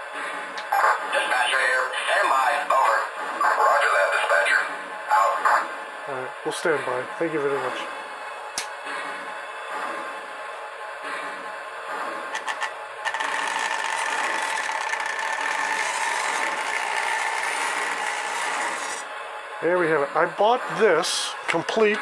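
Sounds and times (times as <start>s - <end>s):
model train motor whine: 12.3s - 19.1s
wheels rolling on track: 12.4s - 19.0s.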